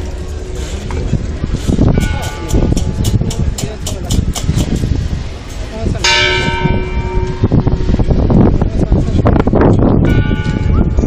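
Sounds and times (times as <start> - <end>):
procession crowd noise: 0.0 - 11.0
bell ringing: 6.0 - 8.0.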